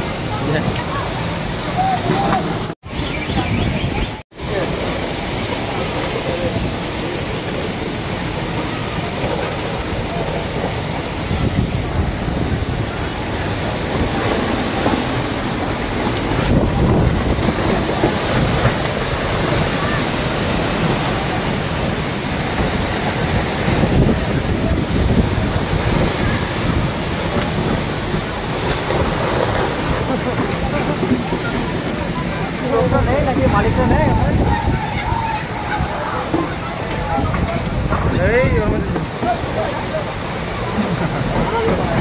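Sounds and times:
gusty wind on microphone: 0.0s - 42.0s
steady rain: 0.0s - 42.0s.

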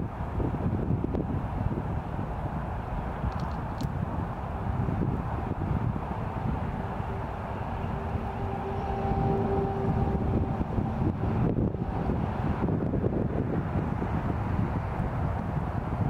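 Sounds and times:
distant traffic: 0.0s - 16.0s
wind buffeting microphone: 0.0s - 16.0s.

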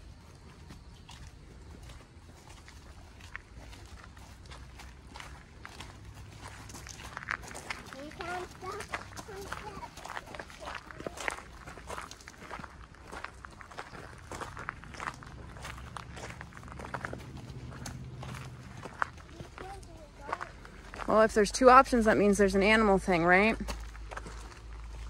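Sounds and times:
footsteps on gravel: 0.0s - 25.0s.

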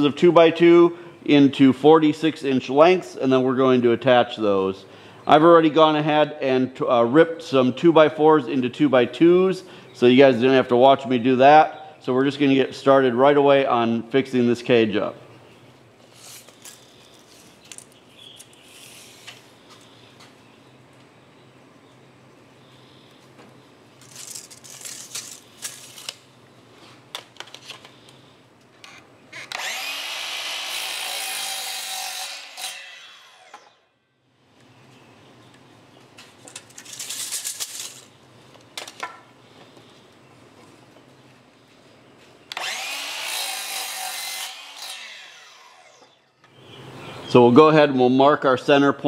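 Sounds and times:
miter saw cutting wood: 29.3s - 33.8s, 42.5s - 46.3s.

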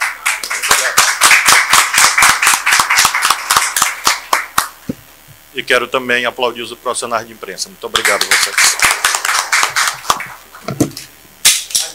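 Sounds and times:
people clapping: 0.0s - 4.8s, 7.9s - 11.9s.

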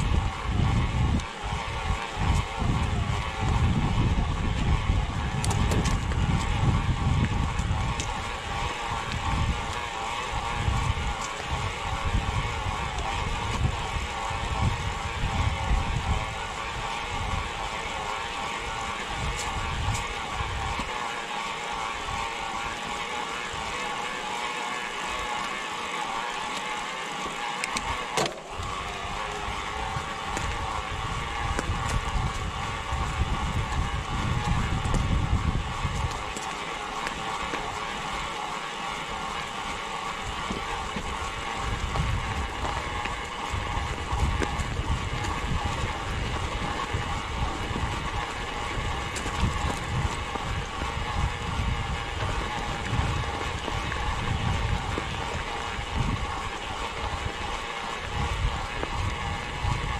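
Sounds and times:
wind buffeting microphone: 0.0s - 20.9s, 28.4s - 38.3s, 39.1s - 59.9s
bike tyre and drivetrain noise: 0.0s - 59.9s.

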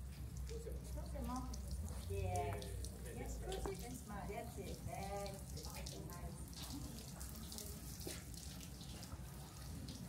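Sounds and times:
water pouring from watering can: 0.0s - 10.0s.

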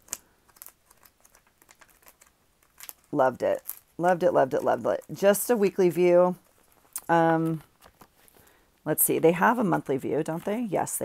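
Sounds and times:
paper pages flipping: 0.0s - 8.5s.

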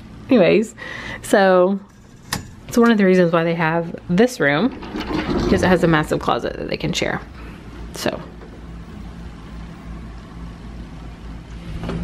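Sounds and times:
household machinery hum: 0.0s - 12.0s.

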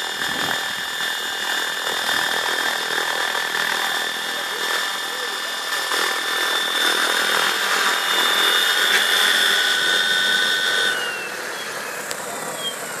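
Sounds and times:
model helicopter motor whine: 0.0s - 13.0s.

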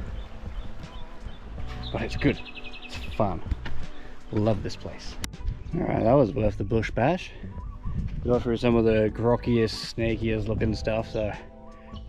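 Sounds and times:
boots on loose rocks: 3.0s - 5.0s
faint bird chirps: 5.6s - 8.2s, 11.5s - 12.0s.

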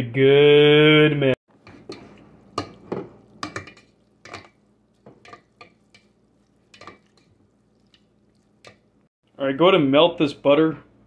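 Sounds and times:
spatula scraping a metal pot: 1.5s - 8.9s.

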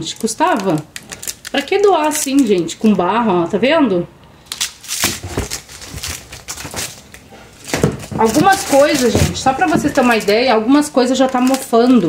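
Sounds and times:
plastic and cardboard crinkling: 0.0s - 2.8s, 4.5s - 12.0s.

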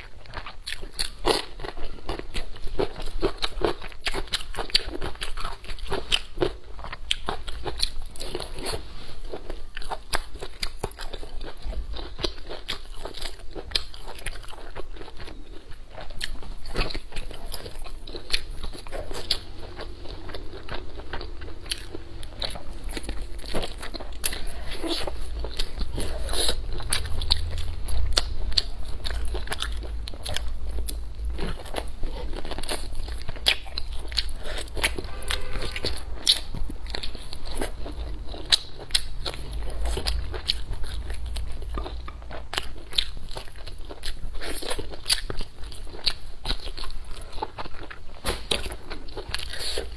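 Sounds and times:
biting and chewing meat: 0.0s - 49.9s.

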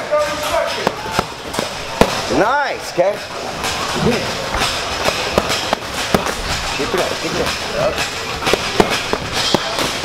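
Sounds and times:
boxing gloves slapping mitts: 0.7s - 2.4s, 4.5s - 10.0s.

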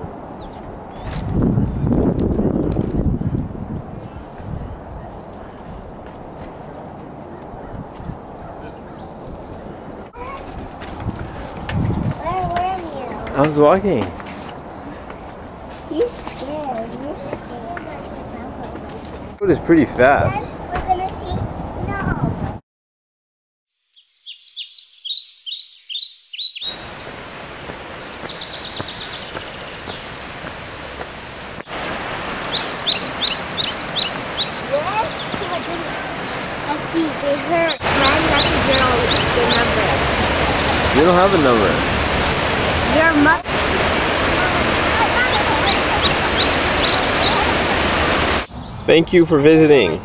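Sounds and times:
birds chirping: 0.0s - 2.0s, 3.1s - 10.4s, 12.2s - 19.0s, 23.9s - 50.0s
waterfall roaring: 12.1s - 14.4s, 26.7s - 48.5s.

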